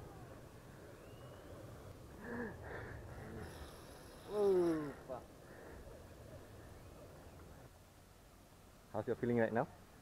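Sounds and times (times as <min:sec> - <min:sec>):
man groaning: 0:04.3 - 0:05.2.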